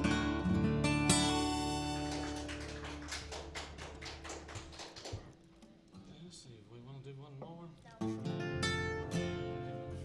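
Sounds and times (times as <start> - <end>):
acoustic guitar chord ringing: 0.0 - 2.5.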